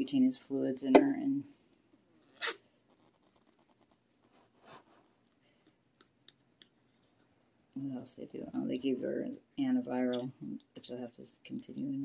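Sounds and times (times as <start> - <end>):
kitten sneezing: 2.4 - 2.6.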